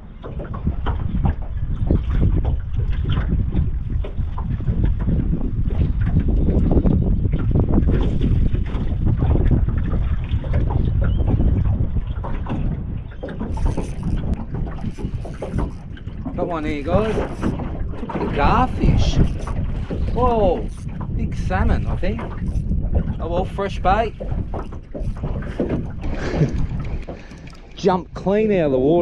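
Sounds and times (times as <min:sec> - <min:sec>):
choppy water: 0:00.0 - 0:29.0
wind buffeting microphone: 0:00.0 - 0:29.0.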